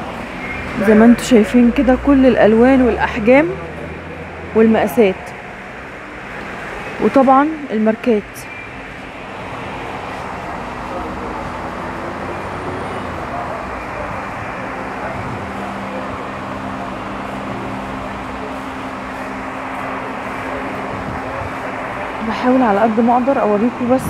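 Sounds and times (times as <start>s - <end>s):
road traffic noise: 0.0s - 24.0s.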